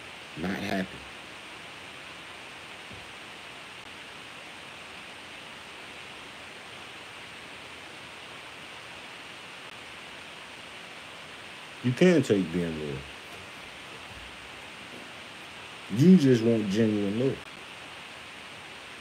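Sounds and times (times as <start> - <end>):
steady background hiss: 0.0 - 19.0
faint soft thump: 2.9 - 3.1.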